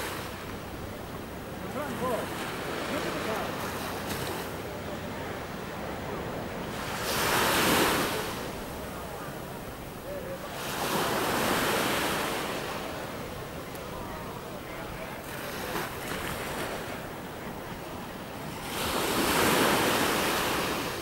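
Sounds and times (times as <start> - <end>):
sea waves washing in: 0.0 - 21.0
wind: 0.0 - 21.0.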